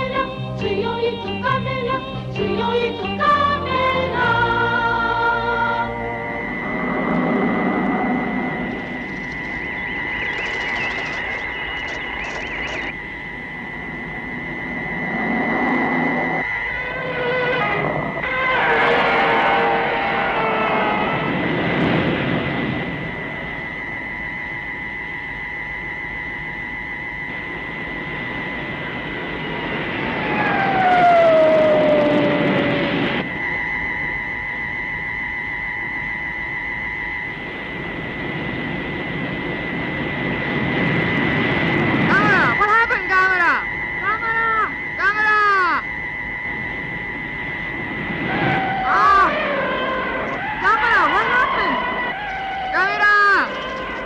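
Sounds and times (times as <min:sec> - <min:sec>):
high electronic whine over hum: 0:00.0 - 0:54.0
tone gliding down: 0:00.0 - 0:54.0
warbling electronic chirps: 0:02.0 - 0:21.5, 0:42.1 - 0:54.0
monster cry: 0:17.0 - 0:21.5, 0:48.3 - 0:52.0.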